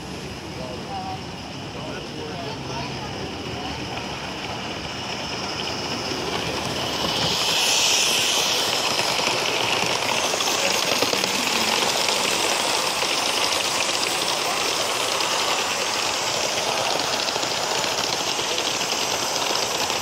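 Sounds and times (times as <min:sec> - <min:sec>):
steam hissing: 0:00.0 - 0:20.0
locomotive wheels clattering: 0:01.8 - 0:20.0.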